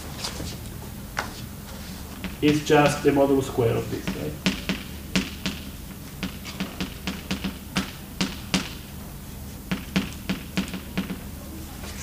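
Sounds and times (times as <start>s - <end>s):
chalk tapping on blackboard: 2.2s - 3.2s, 3.9s - 8.8s, 9.7s - 11.2s.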